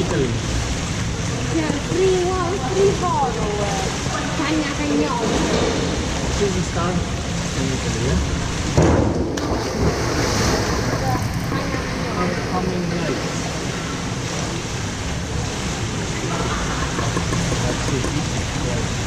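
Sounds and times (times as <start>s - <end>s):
echoing water wash in pool: 0.0s - 19.0s
diver splashing into water: 8.7s - 11.5s.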